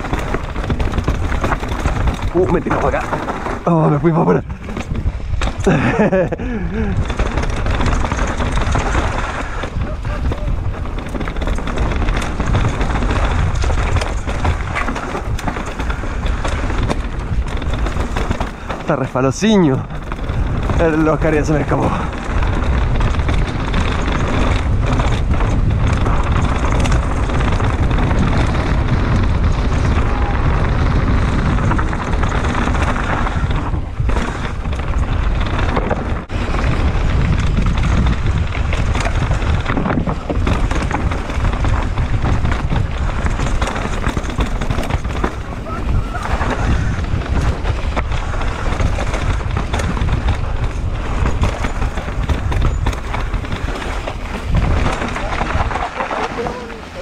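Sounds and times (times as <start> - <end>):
bike rattling over bumps: 0.0 - 57.0
bike tyres on loose dirt: 0.0 - 57.0
wind rumble on microphone: 0.0 - 57.0.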